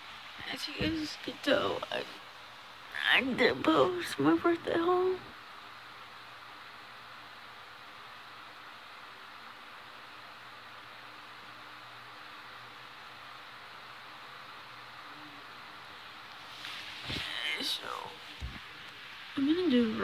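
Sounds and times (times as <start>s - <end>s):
faint hiss: 0.0s - 20.0s.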